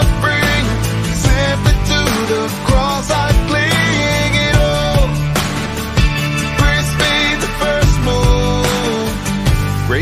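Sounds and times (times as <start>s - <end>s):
drums steady beat: 0.0s - 10.0s
pop-rock worship song: 0.0s - 10.0s.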